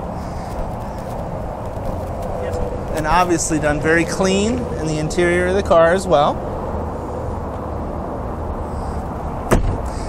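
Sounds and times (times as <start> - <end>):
steady low rumble: 0.0 - 10.0
sharp thump: 9.5 - 9.9.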